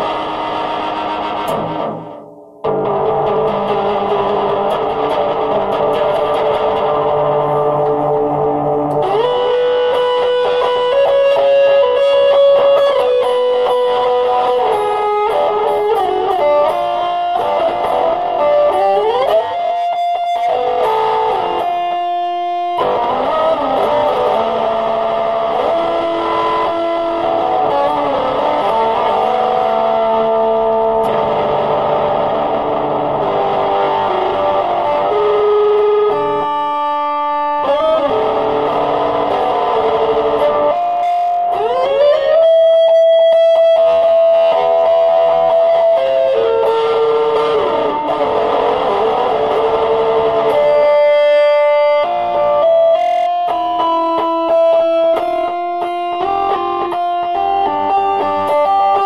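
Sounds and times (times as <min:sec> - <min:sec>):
electric guitar melody: 0:00.0 - 0:59.0.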